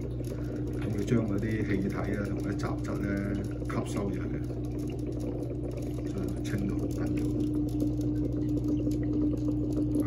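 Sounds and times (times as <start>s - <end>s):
aquarium pump humming: 0.0s - 10.0s
faint irregular ticks: 0.0s - 10.0s
water bubbling: 0.0s - 10.0s.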